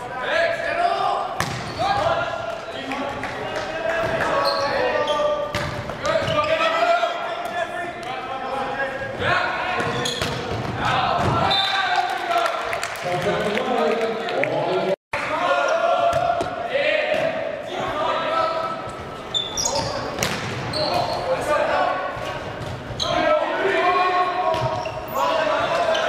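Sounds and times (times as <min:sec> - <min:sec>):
volleyball being hit: 0:01.4 - 0:01.8
players and spectators shouting: 0:10.8 - 0:12.5, 0:15.2 - 0:18.9, 0:23.0 - 0:26.0.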